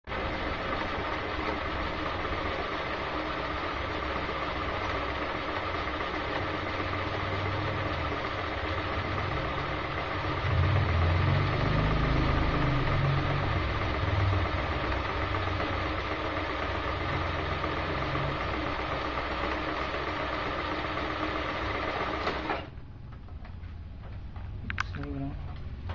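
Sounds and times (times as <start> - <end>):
sewing machine running: 0.1 - 22.8.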